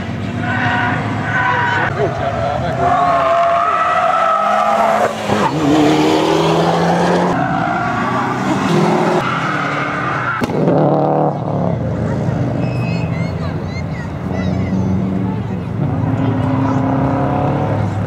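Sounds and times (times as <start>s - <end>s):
race car engines revving: 0.0s - 18.0s
tyres squealing: 2.7s - 5.8s.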